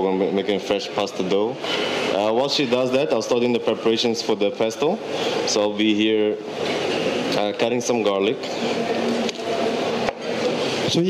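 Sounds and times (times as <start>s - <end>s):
indistinct voices in hall: 0.0s - 11.0s.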